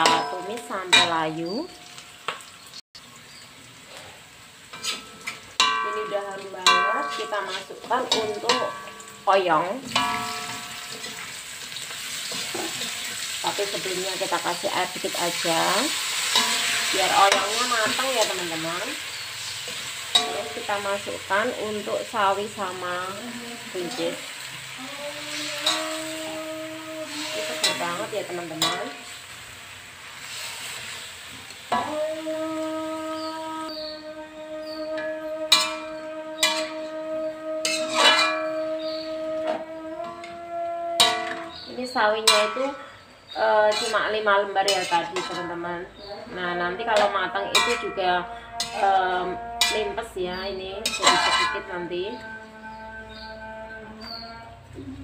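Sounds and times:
metal spatula scraping wok: 0:00.0 - 0:02.0, 0:03.9 - 0:54.2
light frying hiss: 0:00.0 - 0:34.0
vegetables sizzling in oil: 0:00.0 - 0:52.5
metallic ring from wok: 0:04.7 - 0:11.2, 0:15.6 - 0:18.8, 0:20.1 - 0:21.0, 0:25.3 - 0:29.1, 0:35.0 - 0:40.4, 0:47.0 - 0:50.0.

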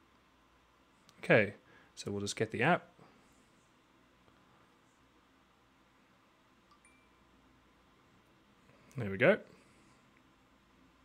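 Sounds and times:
faint short chime: 0:06.7 - 0:07.3.

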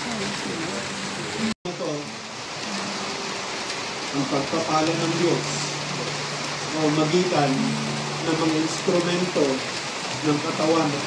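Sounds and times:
heavy rain falling: 0:00.0 - 0:11.0.

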